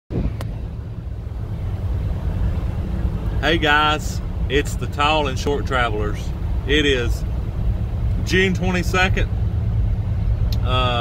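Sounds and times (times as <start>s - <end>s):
wind buffeting microphone: 0.1s - 3.3s.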